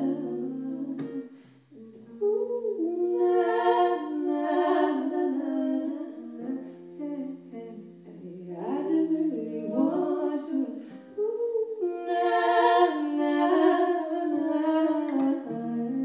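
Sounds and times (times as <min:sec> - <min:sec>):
acoustic guitar: 0:00.0 - 0:16.0
woman singing: 0:00.0 - 0:16.0.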